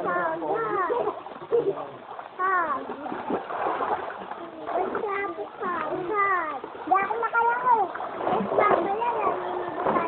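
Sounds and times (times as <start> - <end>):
river water splashing: 0.0 - 10.0.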